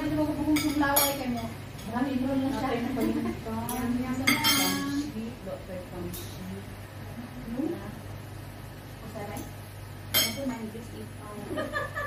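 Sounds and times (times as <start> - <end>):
cutlery and dishes clinking: 3.0 - 5.1, 10.1 - 10.6.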